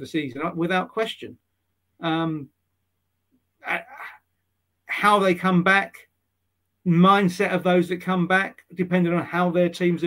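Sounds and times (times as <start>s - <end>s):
man's short vocal noise: 3.6s - 4.2s.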